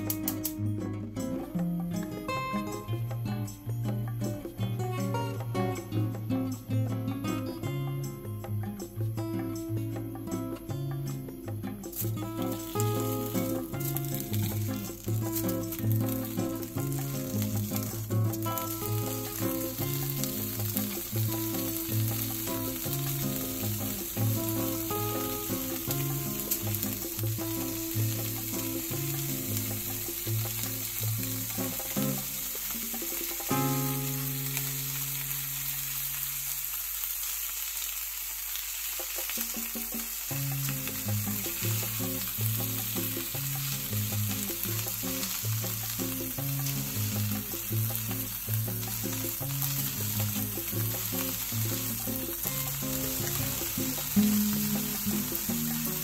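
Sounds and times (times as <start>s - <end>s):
background music with bass pattern: 0.0s - 35.0s, 40.4s - 56.0s
meat sizzling in a frying pan: 11.8s - 56.0s.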